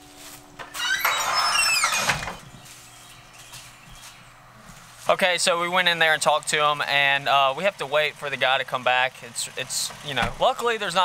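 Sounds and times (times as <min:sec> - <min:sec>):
wooden door hinges squealing: 0:00.6 - 0:02.5.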